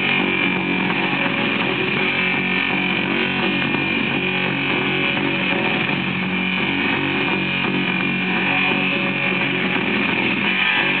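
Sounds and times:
distorted guitar rock on record: 0.0 - 11.0.

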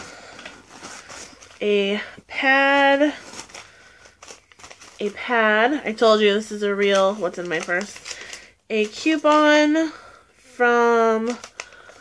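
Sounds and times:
plastic wrapper crinkling: 0.0 - 10.0, 11.0 - 12.0.

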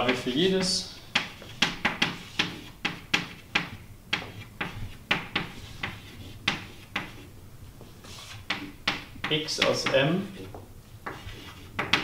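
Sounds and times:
chalk tapping on blackboard: 0.0 - 12.0.

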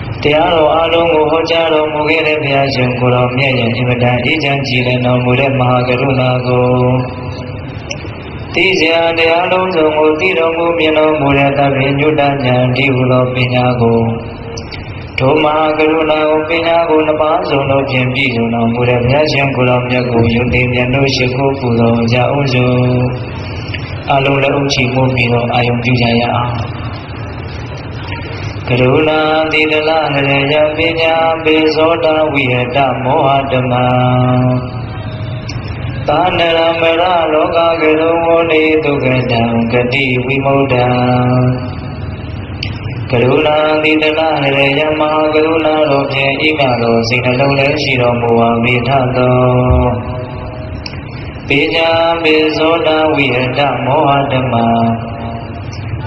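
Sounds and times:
man chanting: 0.0 - 42.0, 42.6 - 56.0.

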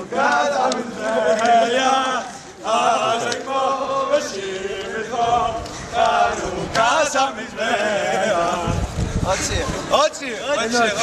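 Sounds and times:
men chanting together: 0.0 - 8.9.

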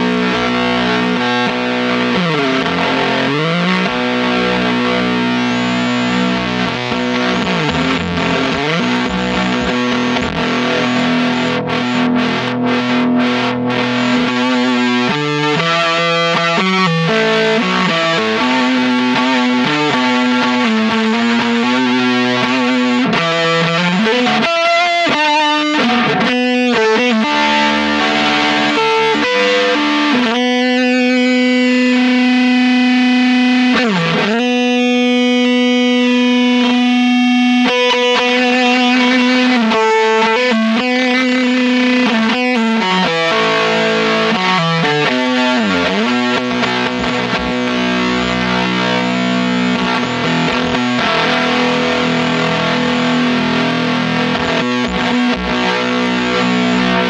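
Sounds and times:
fuzz electric guitar notes: 0.0 - 57.0
guitar feedback: 0.0 - 57.0.

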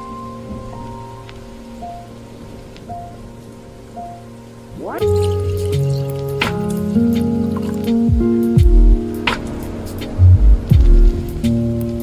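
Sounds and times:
soft music of held chords: 0.0 - 12.0
steady rain falling: 0.0 - 12.0.

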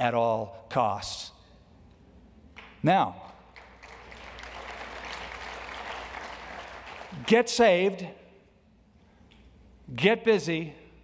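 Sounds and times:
crowd applauding: 3.5 - 7.4.

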